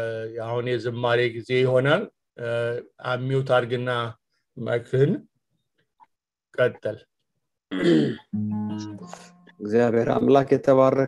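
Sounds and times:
person clearing throat: 7.7s - 8.3s
guitar chord ringing: 8.3s - 10.0s.

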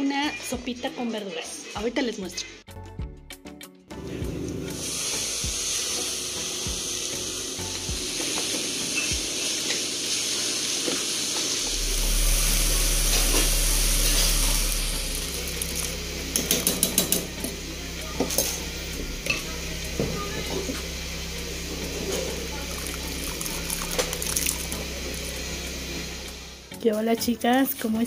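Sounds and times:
meat and onions sizzling in oil: 4.8s - 17.7s, 20.8s - 26.6s.

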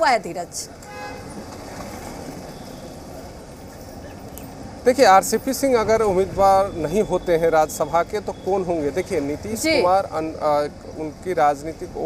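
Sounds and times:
passing vehicles: 0.0s - 12.0s.

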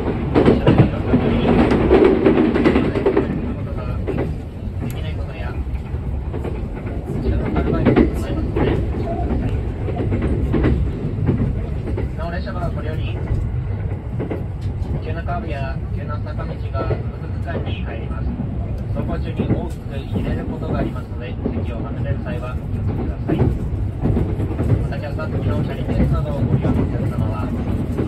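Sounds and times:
train rumble: 0.0s - 28.0s.

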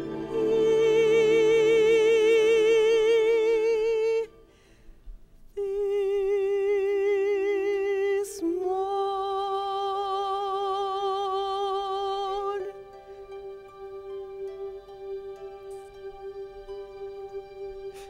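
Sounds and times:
woman singing with vibrato: 0.0s - 4.4s, 5.6s - 15.7s.

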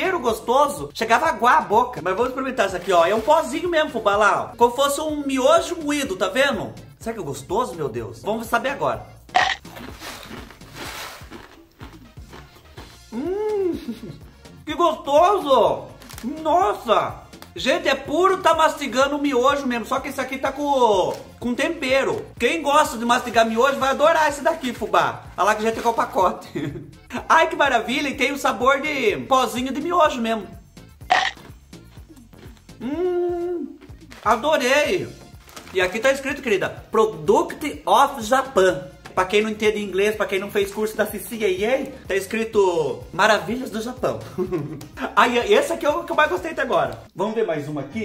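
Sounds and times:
crunchy snack being chewed: 9.4s - 13.3s, 31.1s - 32.8s
man humming appreciatively: 13.1s - 14.3s, 32.2s - 34.0s.

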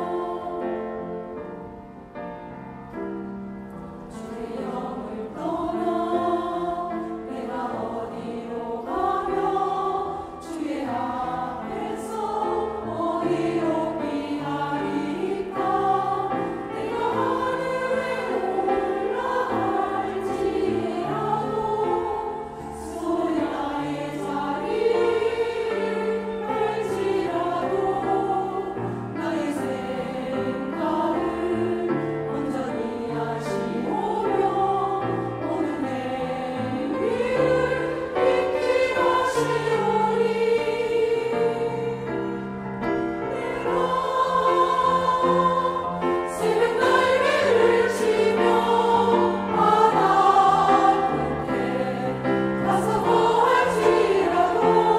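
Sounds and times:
women's choir singing a hymn: 0.0s - 54.9s.

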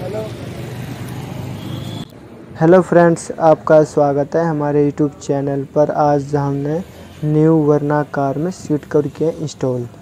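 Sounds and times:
traffic noise: 0.0s - 10.0s.

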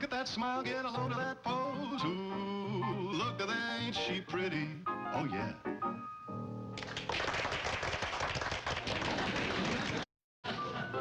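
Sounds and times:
small group applauding: 6.8s - 10.1s.

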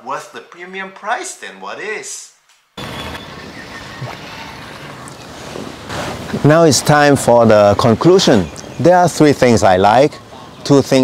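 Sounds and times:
outdoor background hiss and rumble: 0.0s - 11.0s.

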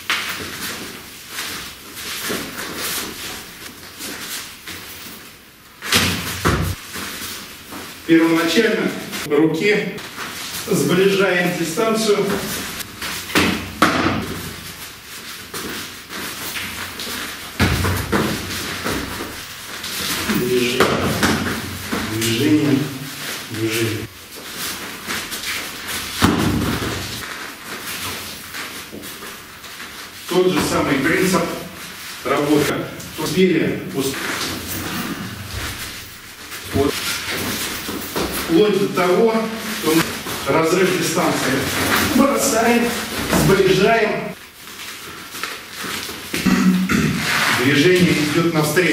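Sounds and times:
clothing rustling: 0.0s - 9.3s, 10.0s - 46.4s
feet shuffling on mat: 0.0s - 9.3s, 9.9s - 48.9s
man speaking a short word: 22.1s - 24.1s.

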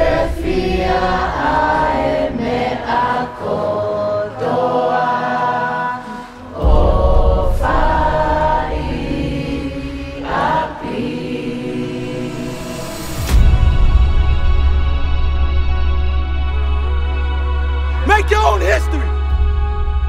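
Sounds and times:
choir singing held notes: 0.0s - 13.2s, 17.9s - 19.2s.

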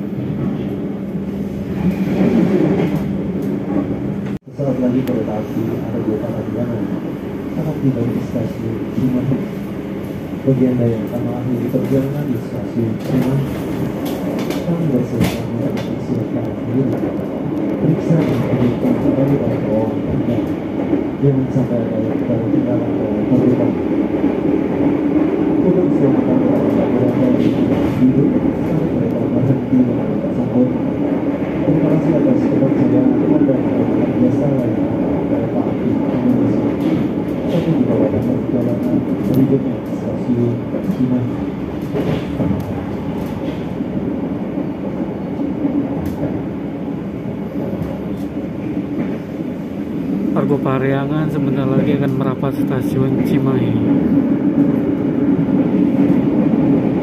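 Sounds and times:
train wheels rumbling on rails: 0.0s - 57.0s.

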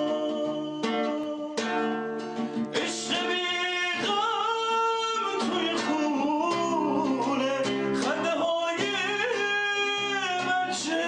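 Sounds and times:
classical guitar: 0.0s - 11.0s
man singing with vibrato: 0.0s - 11.0s.

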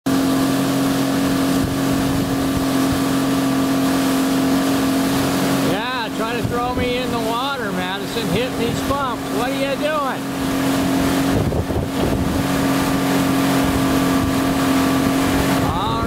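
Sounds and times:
outboard motor running: 0.0s - 16.0s
wind: 0.0s - 16.0s
rushing water: 0.1s - 16.0s
person talking: 5.6s - 10.3s, 15.6s - 16.0s.

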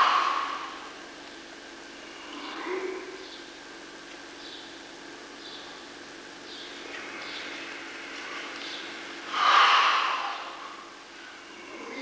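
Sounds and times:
old film soundtrack hiss: 0.0s - 12.0s.

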